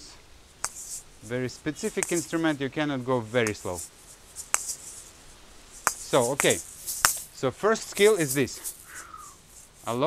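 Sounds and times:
sharp clicks of balls knocking: 0.6s - 0.9s, 1.9s - 2.3s, 3.4s - 4.9s, 5.8s - 7.3s
rattle of swinging balls: 0.6s - 2.6s, 3.2s - 10.0s.

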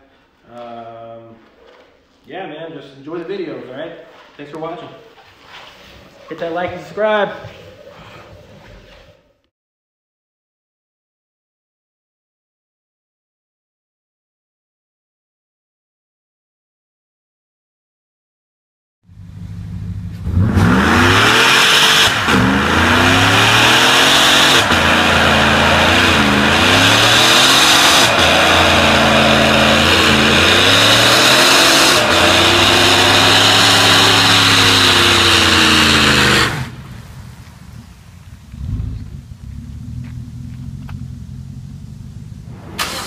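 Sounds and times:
spinning tyres hissing: 19.1s - 43.0s
truck engine revving: 19.2s - 43.0s.

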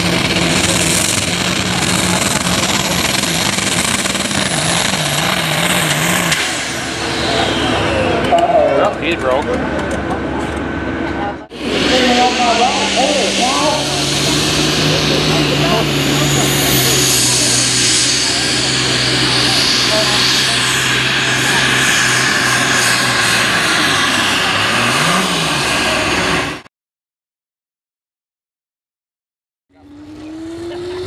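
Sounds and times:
tractor diesel engine under load: 0.0s - 26.7s, 29.7s - 31.0s.

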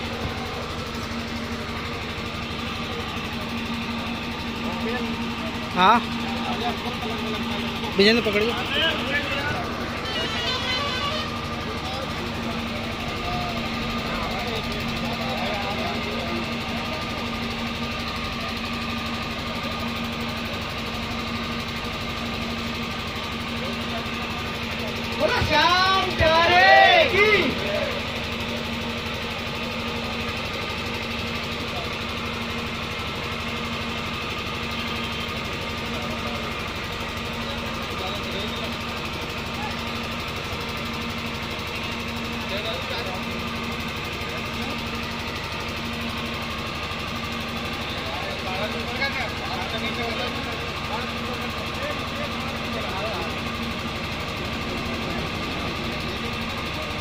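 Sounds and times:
engine humming: 0.0s - 57.0s
people talking: 4.6s - 17.6s, 23.5s - 28.1s, 37.4s - 38.9s, 42.4s - 43.5s, 47.7s - 57.0s.

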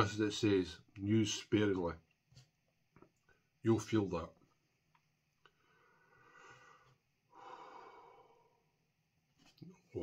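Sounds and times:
man breathing out hard: 5.7s - 8.6s.

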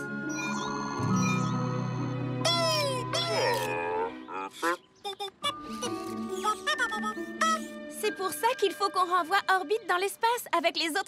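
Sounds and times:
gentle background music: 0.0s - 11.0s.

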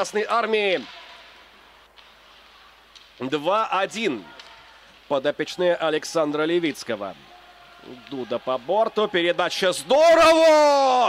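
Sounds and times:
hockey game crowd noise: 0.0s - 11.0s.

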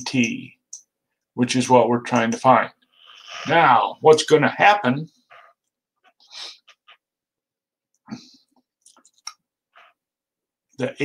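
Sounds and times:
person speaking: 0.0s - 5.5s.

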